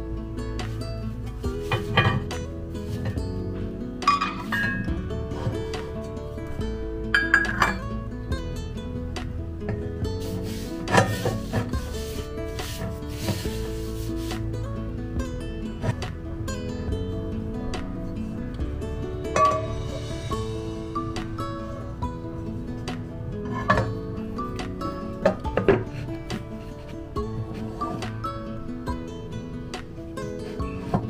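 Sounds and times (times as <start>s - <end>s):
background music: 0.0s - 31.0s
cast iron pans knocking and scraping: 1.5s - 6.0s, 7.2s - 7.9s, 9.7s - 14.4s, 19.3s - 20.1s, 23.0s - 28.5s.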